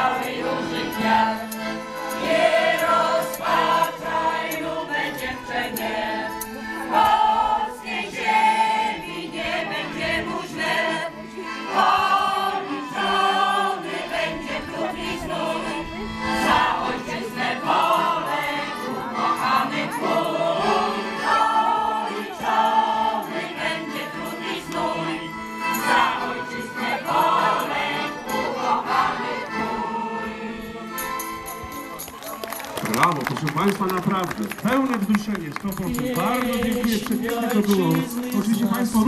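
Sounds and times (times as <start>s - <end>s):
large choir singing: 0.0s - 31.0s.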